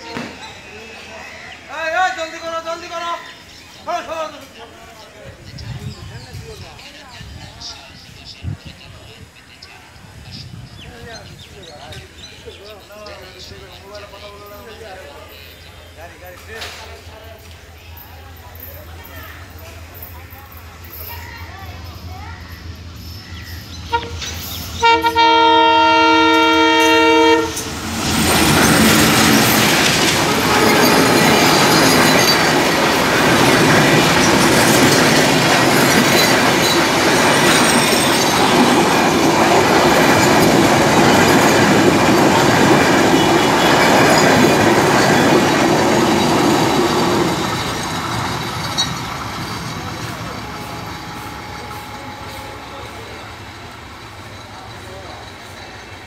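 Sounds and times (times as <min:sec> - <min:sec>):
train wheels rushing on rails: 0:00.0 - 0:56.0
diesel locomotive horn blast: 0:23.8 - 0:27.7, 0:30.2 - 0:31.4, 0:50.0 - 0:53.1.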